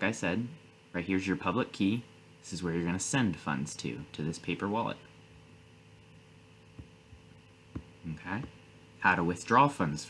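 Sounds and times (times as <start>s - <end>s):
faint electrical hum: 0.0s - 10.0s
soft low thumps: 6.7s - 8.6s.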